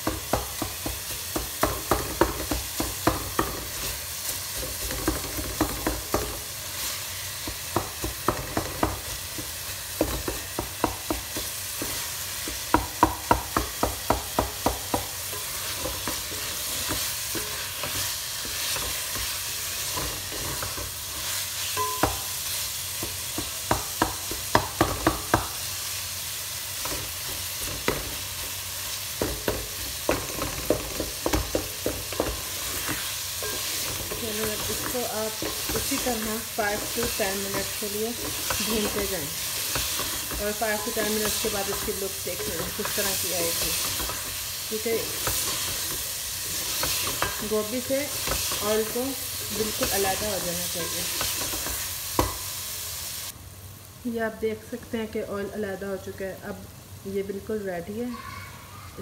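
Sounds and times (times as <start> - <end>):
vegetables sizzling in oil: 0.0 - 59.0
spatula scraping pot: 29.4 - 51.9.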